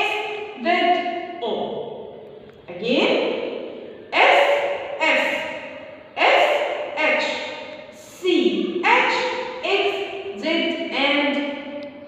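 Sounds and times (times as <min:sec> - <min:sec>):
woman speaking drawn-out words: 0:00.0 - 0:02.0, 0:02.7 - 0:03.5, 0:04.1 - 0:11.8.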